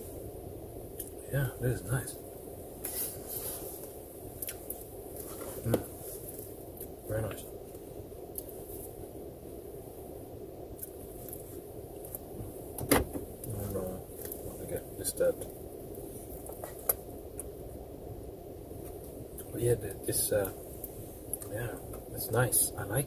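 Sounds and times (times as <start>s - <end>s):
low hum inside car: 0.0s - 23.0s.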